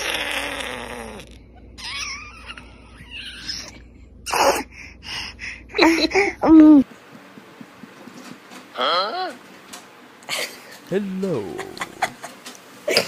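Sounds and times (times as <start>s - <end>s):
baby squealing and grunting: 0.0s - 4.7s.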